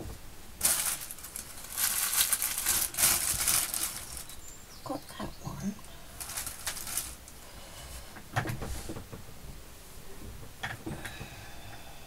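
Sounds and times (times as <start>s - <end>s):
lace rustling: 0.6s - 4.4s, 6.1s - 7.4s.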